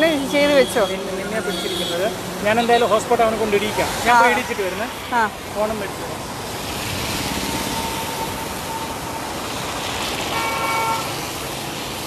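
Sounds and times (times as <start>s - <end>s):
traffic on a wet road: 0.0s - 12.0s
vehicle horn toot: 10.3s - 11.2s.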